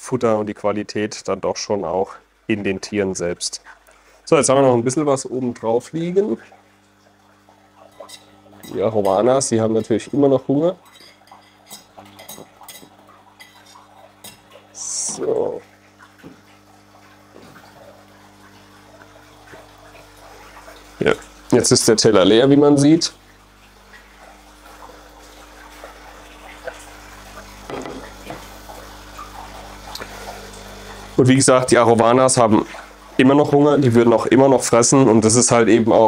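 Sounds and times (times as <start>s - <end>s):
pump hum: 0.0s - 36.0s
water trickling: 0.7s - 36.0s.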